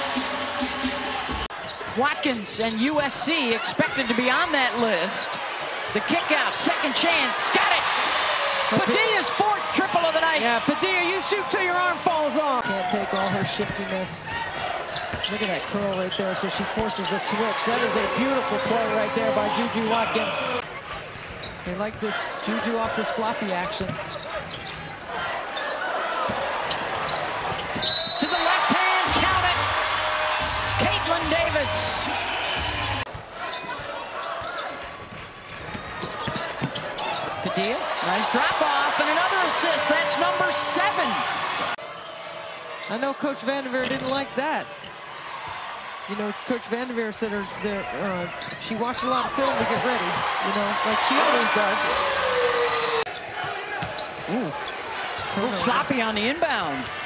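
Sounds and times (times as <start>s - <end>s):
arena game noise: 0.0s - 21.0s, 21.6s - 35.0s, 35.6s - 57.0s.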